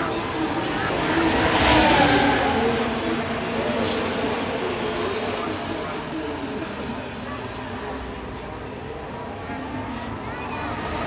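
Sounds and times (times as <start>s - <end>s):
racing car engine passing by: 0.0s - 6.9s.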